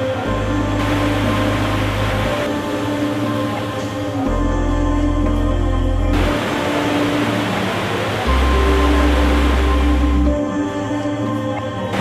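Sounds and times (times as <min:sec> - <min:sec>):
slow sustained chords: 0:00.0 - 0:12.0.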